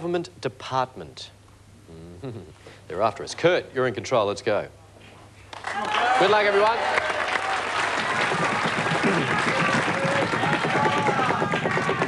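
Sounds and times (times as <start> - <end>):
audience applauding and cheering: 5.5 - 12.0.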